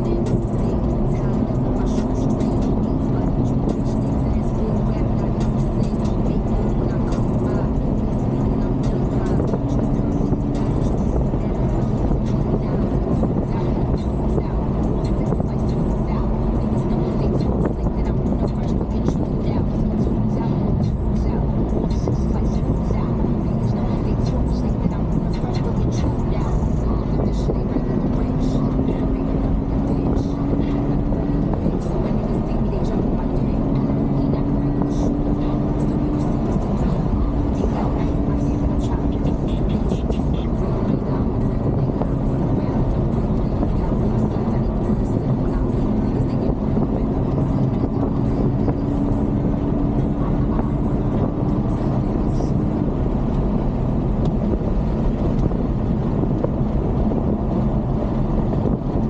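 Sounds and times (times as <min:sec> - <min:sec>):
car engine hum: 0:00.0 - 0:59.0.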